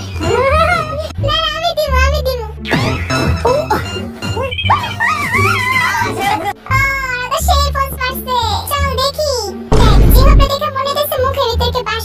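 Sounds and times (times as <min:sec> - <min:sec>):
background music: 0:00.0 - 0:12.0.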